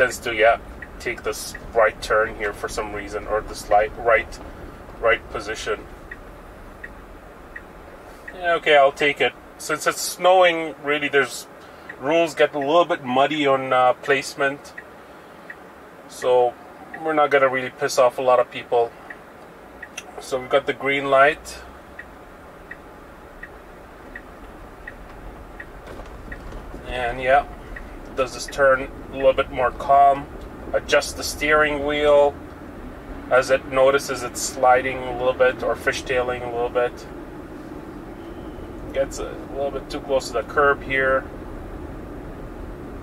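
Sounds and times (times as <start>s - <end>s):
low cabin hum: 0.0s - 43.0s
turn signal ticking: 0.0s - 43.0s.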